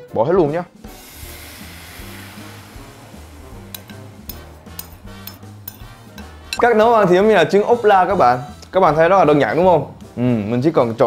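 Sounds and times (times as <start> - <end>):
background music: 0.0 - 11.0
batter sizzling in hot oil: 0.8 - 6.5.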